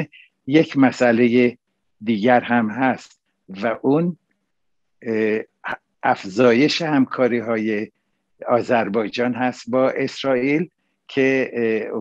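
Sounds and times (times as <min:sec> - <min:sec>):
man speaking: 0:00.0 - 0:04.2, 0:05.0 - 0:12.0.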